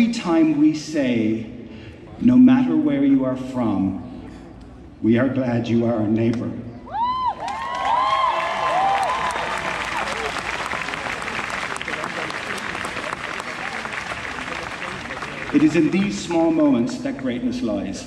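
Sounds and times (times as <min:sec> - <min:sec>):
whoops and cheers: 0:06.9 - 0:10.6
audience applauding: 0:07.4 - 0:16.3.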